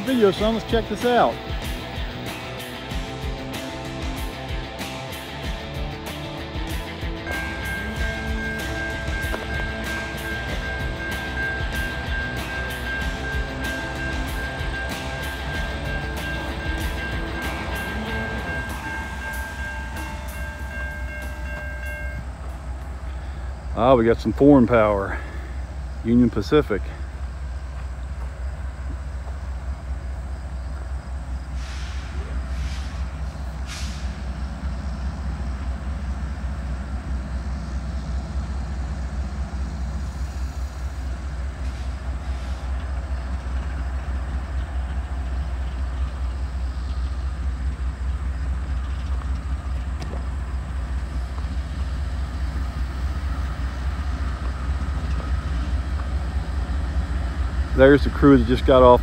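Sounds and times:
diesel locomotive engine rumble: 0:00.0 - 0:59.0
short hisses: 0:31.5 - 0:34.3.

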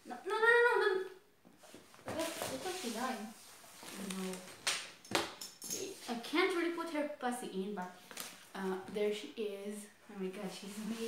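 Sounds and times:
girls talking: 0:00.0 - 0:01.2.

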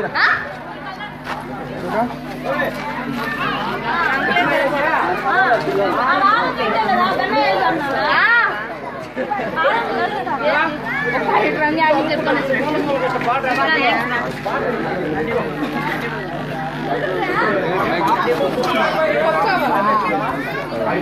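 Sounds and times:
people talking over one another: 0:00.0 - 0:21.0.

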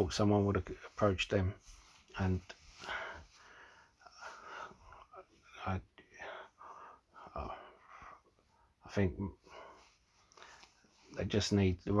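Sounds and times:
man breathing: 0:02.5 - 0:11.1.

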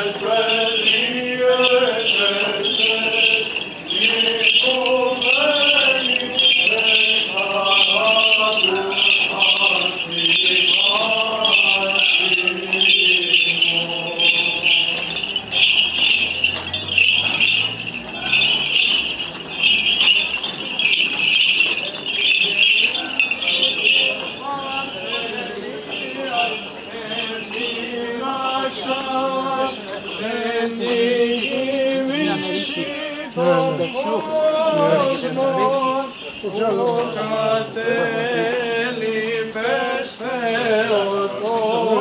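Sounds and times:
voice chanting a hymn: 0:00.0 - 0:19.0, 0:21.7 - 0:42.0
small metal bells jingling: 0:00.0 - 0:42.0.

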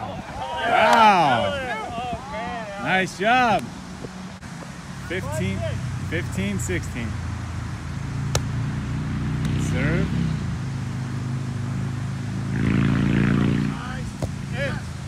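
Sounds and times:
players calling out: 0:00.0 - 0:03.6, 0:05.0 - 0:07.2, 0:13.1 - 0:15.0
volleyball served by hand: 0:08.3 - 0:08.5.

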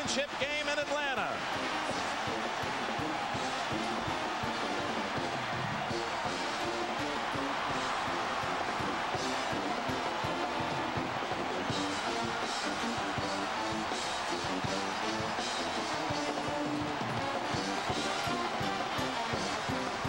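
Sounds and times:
arena crowd noise: 0:00.0 - 0:20.0.

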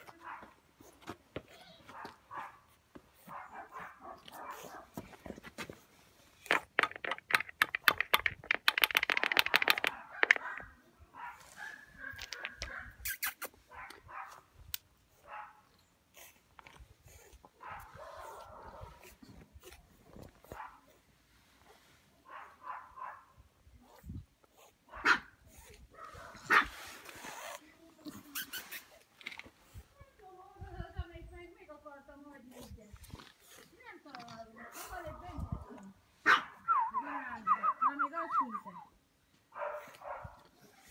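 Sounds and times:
puppy barking: 0:01.9 - 0:02.7, 0:03.3 - 0:05.0, 0:09.8 - 0:13.0, 0:13.7 - 0:14.4, 0:15.2 - 0:15.6, 0:17.6 - 0:19.0, 0:22.3 - 0:23.3, 0:24.9 - 0:25.4, 0:26.0 - 0:26.8, 0:36.2 - 0:36.7, 0:39.6 - 0:40.9
clicks and scrapes: 0:06.4 - 0:10.7, 0:12.1 - 0:13.6
puppy whimpering and yipping: 0:28.2 - 0:29.0.

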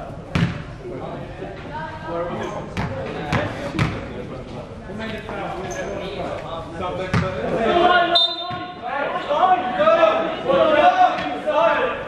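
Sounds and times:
basketball bouncing on floor: 0:00.3 - 0:00.6.

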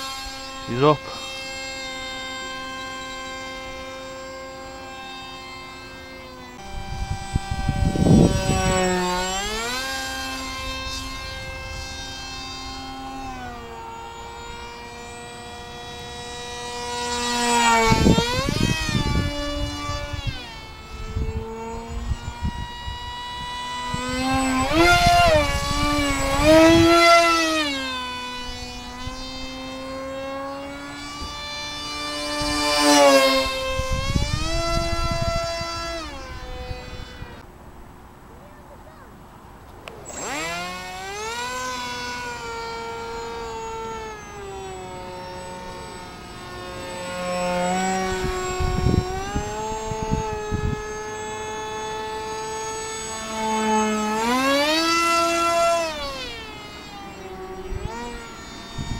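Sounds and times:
model plane electric motor whining: 0:00.0 - 0:37.5, 0:39.7 - 0:58.9.

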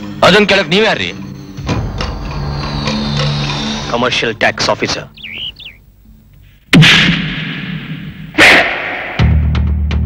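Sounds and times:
warbling chirp: 0:04.7 - 0:05.9.

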